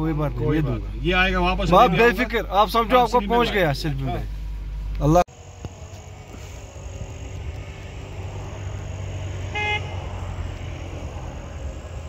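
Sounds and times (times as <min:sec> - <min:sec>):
vehicle engine rumble: 0:00.0 - 0:12.0
car horn beep: 0:08.8 - 0:10.2.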